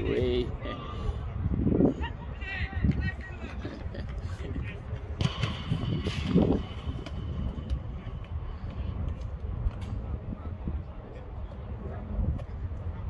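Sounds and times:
low rumble: 5.0s - 11.0s.

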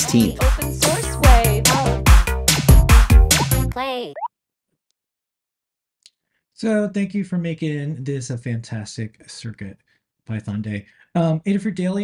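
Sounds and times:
electronic background music: 0.0s - 3.8s.

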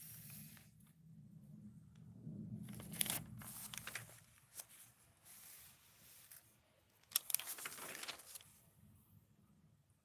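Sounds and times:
magazine pages rustling: 2.7s - 8.6s.

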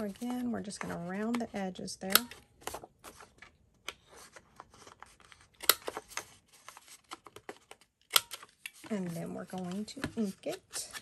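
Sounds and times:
faint paper rustling: 0.0s - 1.4s, 2.4s - 7.8s, 8.4s - 11.0s.

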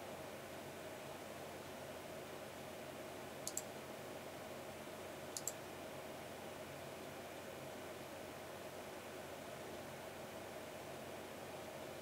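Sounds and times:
faint steady hiss: 0.0s - 12.0s
computer mouse button clicks: 3.4s - 3.7s, 5.4s - 5.6s.

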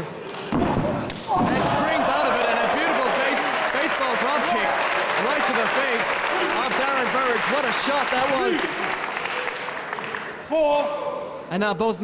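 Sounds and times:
crowd shouting and cheering: 0.3s - 11.5s.

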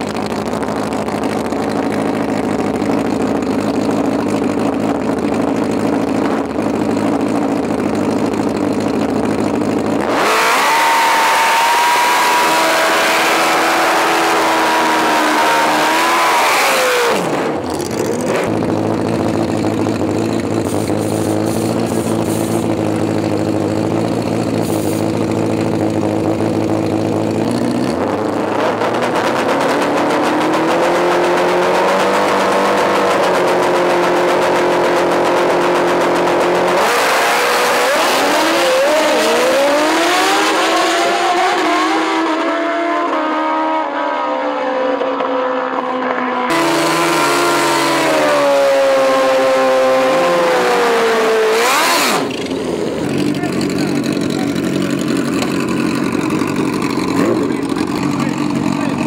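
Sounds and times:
motorcycle engines idling: 0.0s - 10.3s, 17.3s - 36.9s, 45.1s - 59.0s
motorcycle engine revving high: 0.0s - 59.0s.

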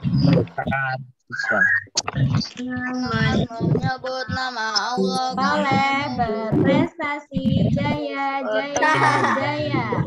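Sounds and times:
children's voices over video call: 1.3s - 10.0s.

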